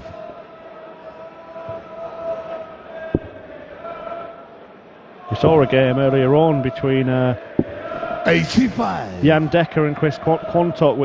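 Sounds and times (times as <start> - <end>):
low hall murmur: 0.0 - 11.0
sharp knock: 7.6 - 7.8.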